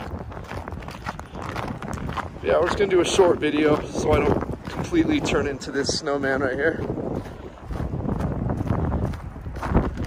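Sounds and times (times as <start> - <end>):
footsteps crunching on snow: 0.0 - 10.0
wind buffeting microphone: 0.0 - 10.0.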